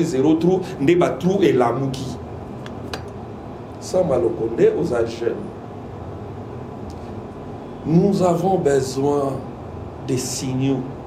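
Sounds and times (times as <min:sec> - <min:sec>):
man speaking: 0:00.0 - 0:02.2, 0:03.8 - 0:05.6, 0:07.8 - 0:09.5
steady background hiss: 0:00.0 - 0:11.0.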